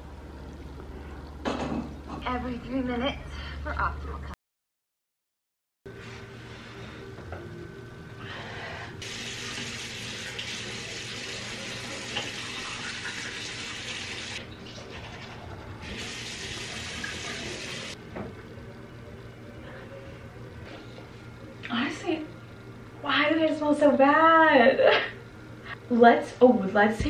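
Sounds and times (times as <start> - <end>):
steady low hum: 0.0 - 4.4, 5.9 - 13.2, 14.4 - 27.0.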